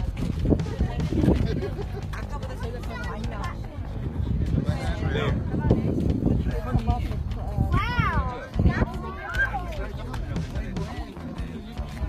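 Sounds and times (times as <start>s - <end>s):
wind buffeting microphone: 0.0s - 10.4s
people talking: 0.0s - 12.0s.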